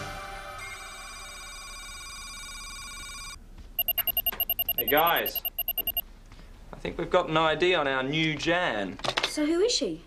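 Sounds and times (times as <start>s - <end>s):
fast electronic beeps: 3.8s - 6.0s
held electronic tone: 3.8s - 6.0s.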